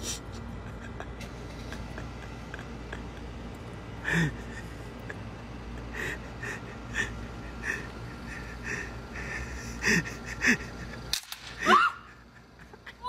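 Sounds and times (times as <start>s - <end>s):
wheezing breathy laughter: 0.0s - 13.0s.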